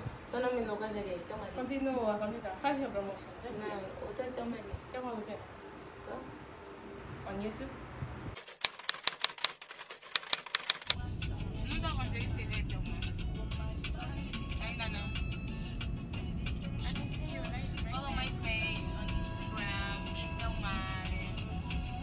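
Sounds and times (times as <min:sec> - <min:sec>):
keyboard typing clicks: 0:08.4 - 0:11.0
music with singing: 0:11.0 - 0:22.0.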